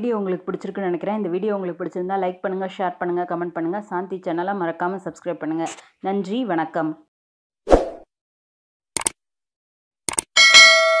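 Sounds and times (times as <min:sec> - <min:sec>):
double mouse clicks: 0:09.0 - 0:09.2, 0:10.1 - 0:10.3
bell ding ringing: 0:10.4 - 0:11.0.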